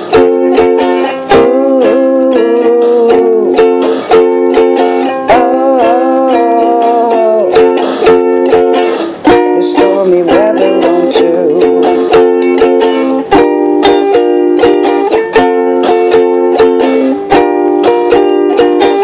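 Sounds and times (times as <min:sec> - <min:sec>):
ukulele strumming chords: 0:00.0 - 0:19.0.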